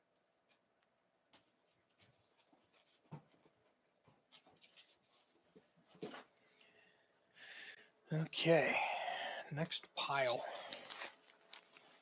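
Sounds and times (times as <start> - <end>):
records rustling in paper sleeves: 1.3 - 6.3, 10.5 - 12.0.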